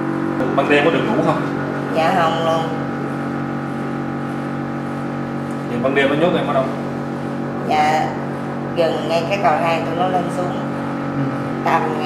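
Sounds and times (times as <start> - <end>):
steady drone of held tones: 0.0 - 12.0.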